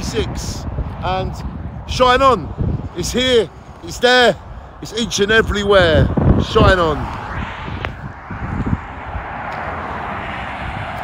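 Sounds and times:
traffic rushing past: 0:00.0 - 0:11.0
wind buffeting microphone: 0:00.0 - 0:11.0.

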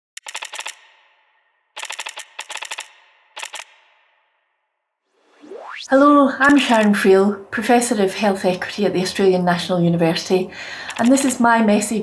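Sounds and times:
typing clicks sound effect: 0:00.2 - 0:01.1, 0:01.8 - 0:04.0, 0:06.4 - 0:07.0, 0:10.9 - 0:11.4.

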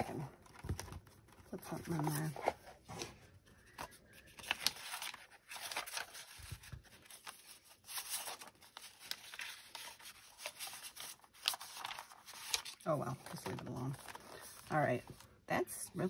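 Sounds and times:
paper rustling and crinkling: 0:00.0 - 0:15.4.

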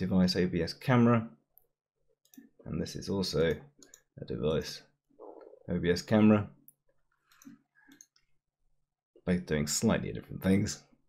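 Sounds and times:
computer mouse clicking: 0:06.6 - 0:08.3.

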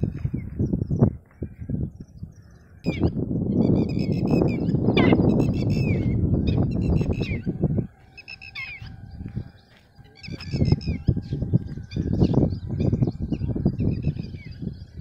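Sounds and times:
birds chirping: 0:00.0 - 0:15.0.

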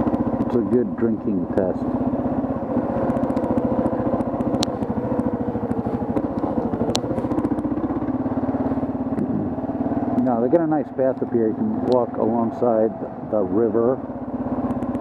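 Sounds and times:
motorcycle engine running: 0:00.0 - 0:15.0
sharp ticks: 0:02.8 - 0:07.7.

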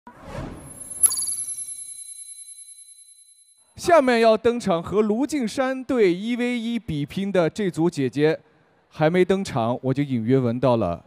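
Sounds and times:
bright chime: 0:00.6 - 0:03.6.

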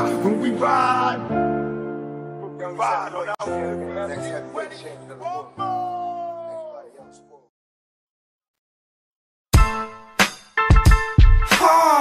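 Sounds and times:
hip-hop backing music: 0:00.0 - 0:06.5, 0:09.5 - 0:12.0.

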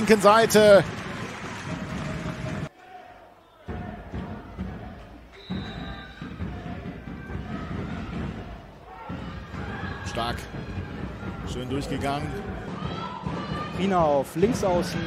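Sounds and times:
crowd noise and shouting: 0:00.0 - 0:15.0.

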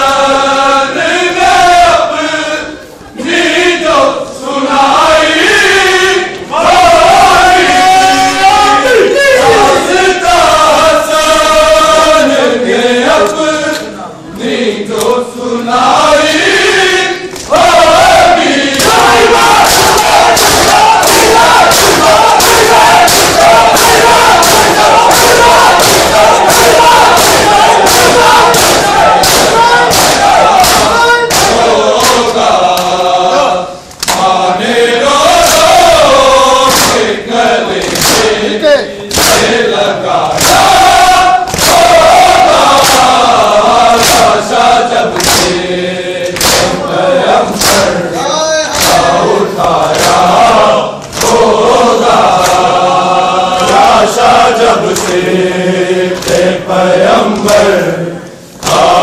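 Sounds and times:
men chanting in unison: 0:00.0 - 0:59.0
hands slapping bare chests: 0:18.7 - 0:32.9, 0:34.0 - 0:34.3, 0:36.7 - 0:37.0, 0:37.8 - 0:38.3, 0:39.1 - 0:39.5, 0:41.5 - 0:41.9, 0:42.6 - 0:43.2, 0:44.0 - 0:44.4, 0:45.2 - 0:45.6, 0:46.2 - 0:46.8, 0:47.6 - 0:47.9, 0:48.7 - 0:49.1, 0:51.0 - 0:51.4, 0:52.4 - 0:52.6, 0:54.9 - 0:55.2.

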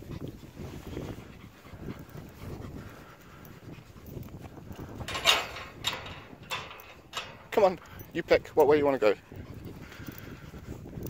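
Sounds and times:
loud panting breaths: 0:00.0 - 0:11.0.

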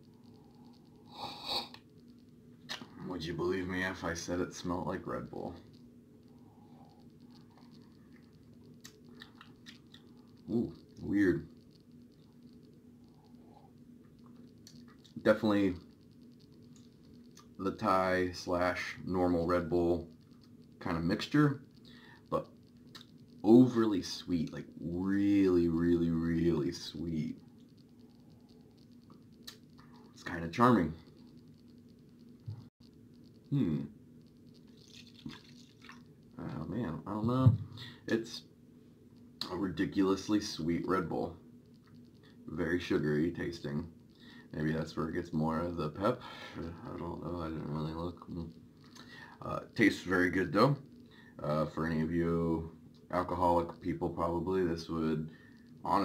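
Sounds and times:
low room hum: 0:00.0 - 0:56.0
drink trickling into plastic cup: 0:34.7 - 0:36.0
person sipping and swallowing: 0:34.7 - 0:36.0.

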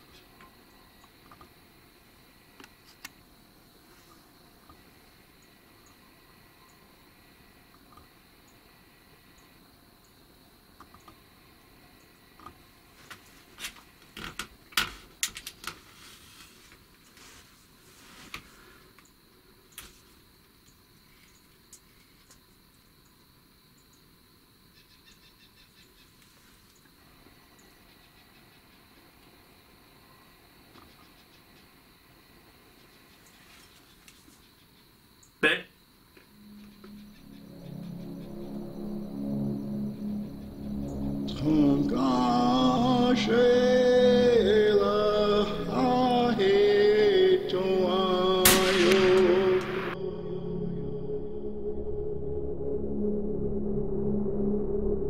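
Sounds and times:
thin steady high tone: 0:36.3 - 0:48.0.

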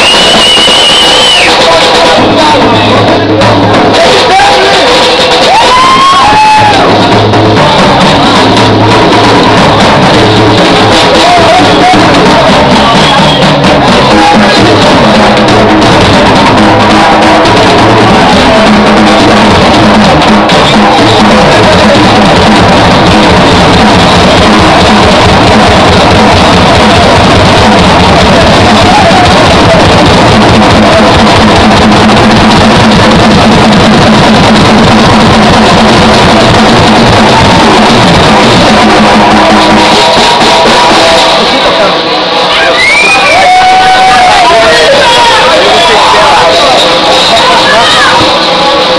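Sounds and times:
drum kit and cymbals: 0:00.0 - 0:48.9
live band playing loud: 0:00.0 - 0:48.9.

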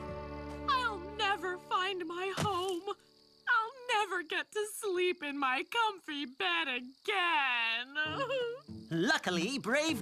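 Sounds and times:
cartoon character crying: 0:08.0 - 0:08.6.

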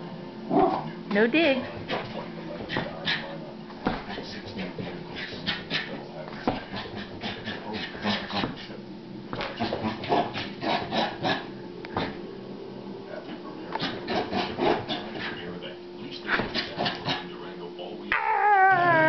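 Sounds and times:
small dog rasping play noises: 0:01.6 - 0:12.2, 0:13.7 - 0:15.4, 0:16.1 - 0:17.3.

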